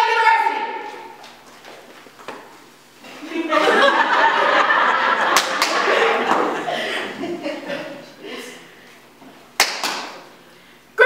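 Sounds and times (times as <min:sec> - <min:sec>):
body percussion strikes: 0:05.3 - 0:06.6, 0:09.6 - 0:10.3.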